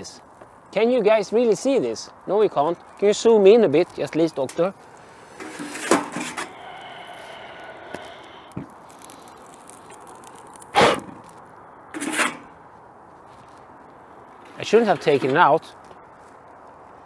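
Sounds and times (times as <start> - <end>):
metal pizza peel scraping: 5.2 - 6.6, 12.0 - 12.5.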